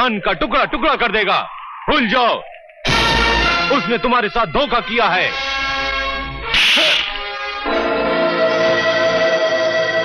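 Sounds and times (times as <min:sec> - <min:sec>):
film score sustained chords: 0:02.8 - 0:10.0
hissing swish effect: 0:06.6 - 0:07.2.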